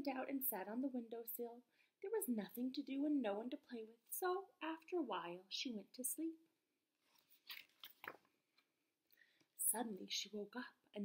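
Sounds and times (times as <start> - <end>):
book page turning: 7.0 - 8.4.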